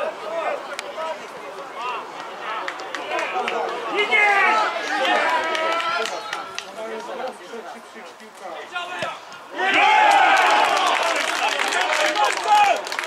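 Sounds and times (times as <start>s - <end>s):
men shouting: 9.5s - 11.2s.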